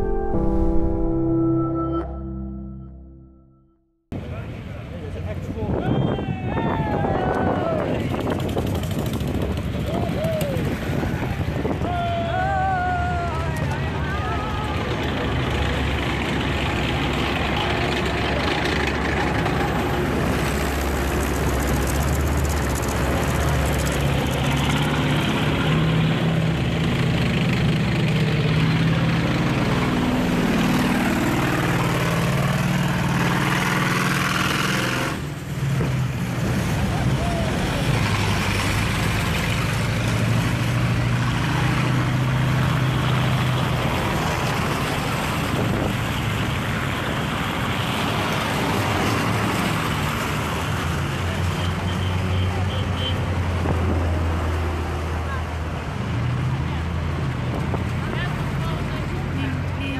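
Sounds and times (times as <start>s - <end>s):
tracked vehicle engines driving past: 12.9s - 59.9s.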